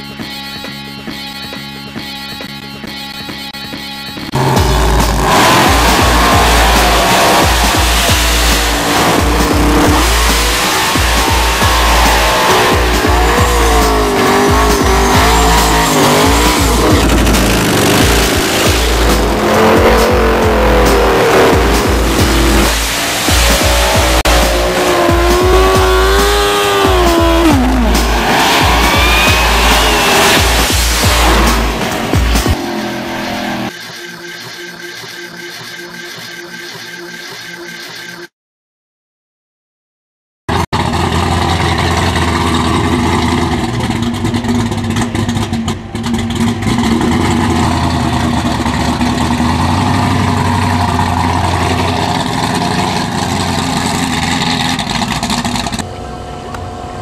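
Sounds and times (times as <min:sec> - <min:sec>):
music with heavy beat: 0:03.3 - 0:34.6
racing engines revving: 0:04.3 - 0:33.8, 0:40.8 - 0:57.0
tyres squealing: 0:05.6 - 0:20.1, 0:23.3 - 0:31.8.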